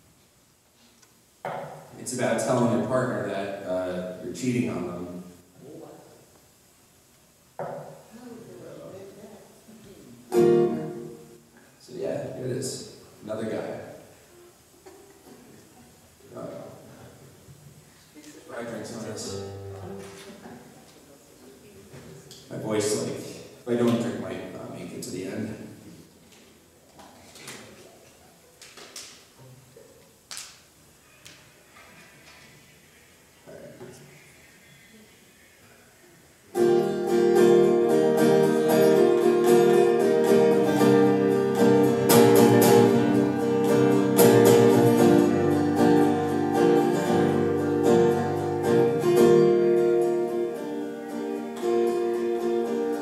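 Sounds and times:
acoustic guitar strum: 0:10.3 - 0:11.4, 0:36.6 - 0:53.0.

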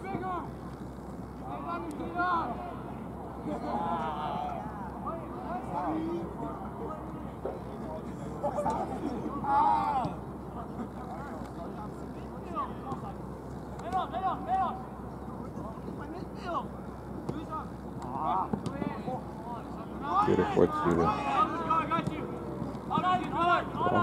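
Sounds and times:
low background hum: 0:00.0 - 0:24.0
players shouting: 0:08.5 - 0:10.9, 0:11.8 - 0:24.0.

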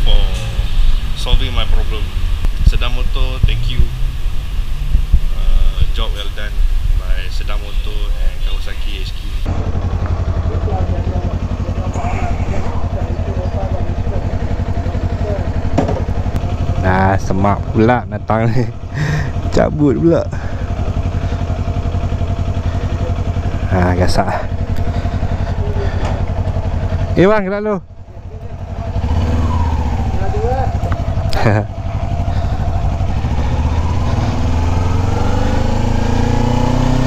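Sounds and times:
motorcycle engine idling: 0:00.0 - 0:37.0.

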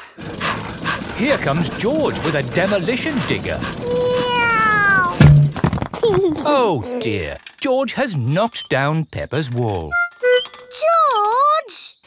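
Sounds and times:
wrecking ball crashing into blocks: 0:05.2 - 0:06.0.

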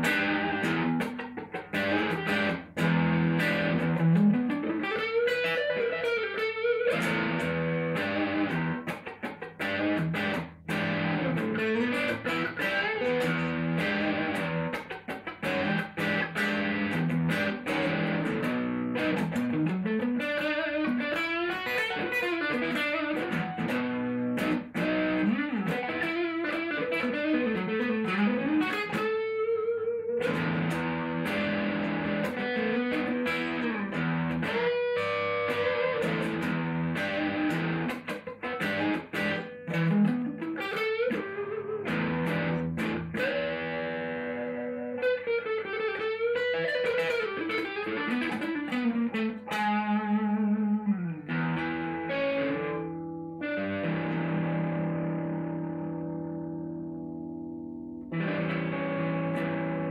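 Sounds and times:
electric guitar lead lines: 0:00.0 - 0:59.9.

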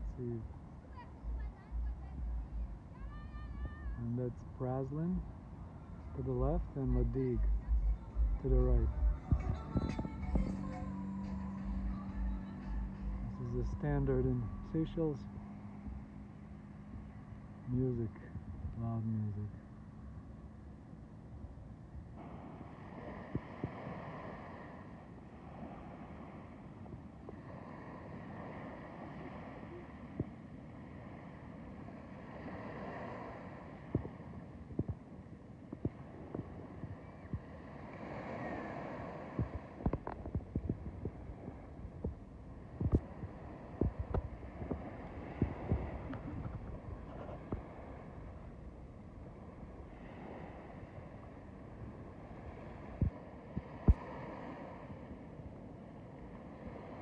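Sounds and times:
waves washing onto beach: 0:00.0 - 0:57.0
thumps and clicks on microphone: 0:08.3 - 0:10.6, 0:34.8 - 0:35.0, 0:39.4 - 0:41.2, 0:42.0 - 0:42.2, 0:42.8 - 0:43.1, 0:43.8 - 0:44.8, 0:45.4 - 0:47.7.

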